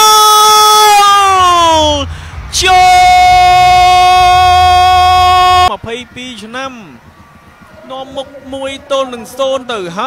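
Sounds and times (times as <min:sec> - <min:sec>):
commentator shouting: 0:00.0 - 0:07.0.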